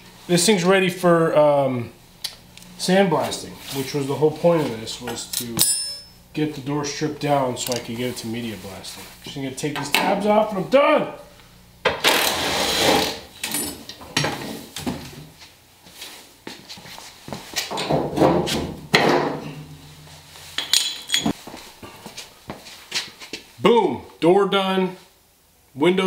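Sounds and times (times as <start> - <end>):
metal clinks and knocks: 5.3 - 6.2, 19.2 - 21.4
metal scraping: 19.2 - 21.4.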